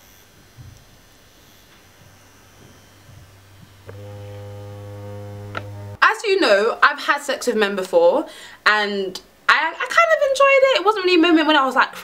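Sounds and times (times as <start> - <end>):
vibrator motor buzzing: 0.0 - 6.0.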